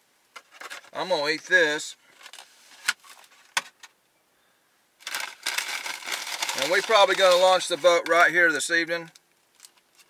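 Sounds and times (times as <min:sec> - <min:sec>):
food packaging crinkling: 0:05.0 - 0:08.3, 0:09.1 - 0:10.0.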